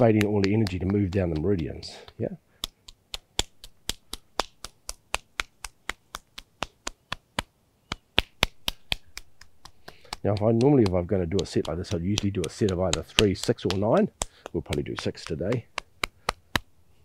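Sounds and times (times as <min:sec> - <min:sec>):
palm slapping forearm: 0:00.0 - 0:16.8.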